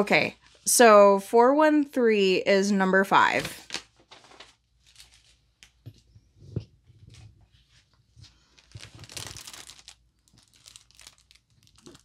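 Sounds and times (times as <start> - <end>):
plastic film crinkling: 3.4 - 5.8, 8.4 - 12.0.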